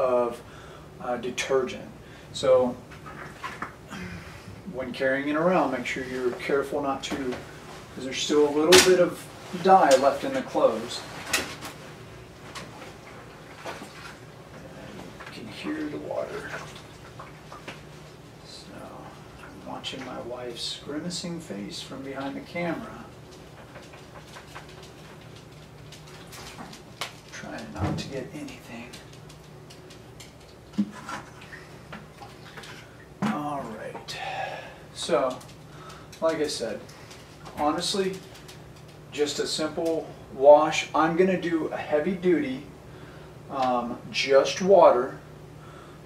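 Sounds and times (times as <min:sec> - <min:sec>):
low steady hum: 0:00.0 - 0:46.0
water trickling: 0:15.6 - 0:17.8.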